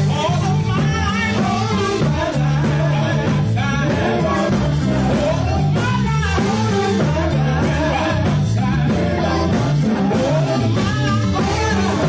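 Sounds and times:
bass line: 0:00.0 - 0:12.0
drum kit: 0:00.0 - 0:12.0
guitar: 0:00.0 - 0:12.0
men singing gospel: 0:00.0 - 0:12.0.

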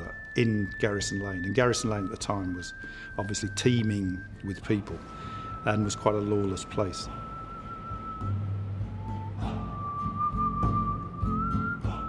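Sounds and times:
high wavering whistle-like note: 0:00.0 - 0:12.0
low steady drone: 0:00.0 - 0:12.0.

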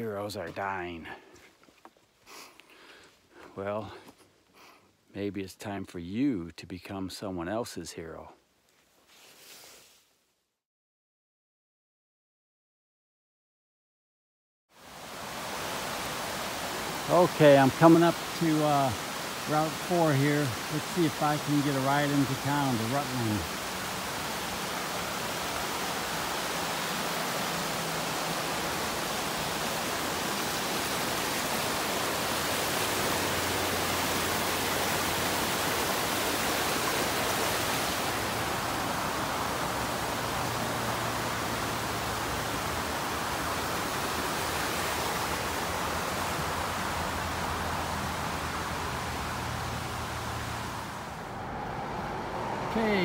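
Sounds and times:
stream rushing: 0:14.8 - 0:53.0.

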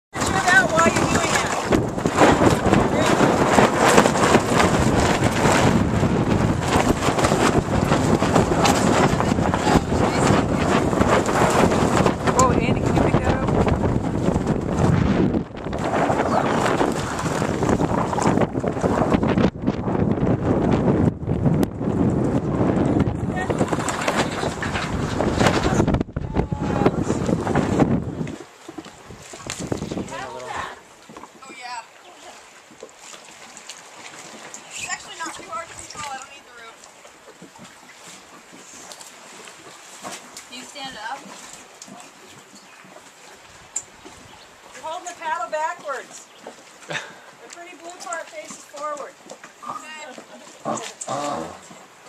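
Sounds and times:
wind buffeting microphone: 0:00.1 - 0:32.8, 0:33.9 - 0:38.6, 0:39.2 - 0:52.0
water rushing along hulls: 0:00.1 - 0:52.0.

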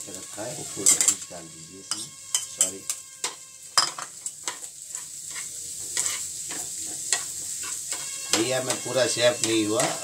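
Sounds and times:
eggs sizzling in a pan: 0:00.0 - 0:10.0
spatula scraping and tapping pan: 0:00.8 - 0:10.0.

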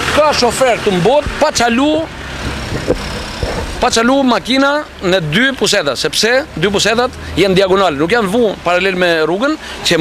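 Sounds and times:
street traffic rumble and hiss: 0:00.0 - 0:10.0.

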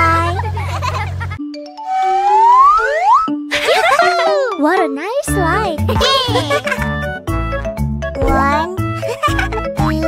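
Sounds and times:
children's music with bass beat: 0:00.0 - 0:10.0
rising pitch glide: 0:01.7 - 0:03.5
wavering pitched sounds: 0:01.7 - 0:03.5.

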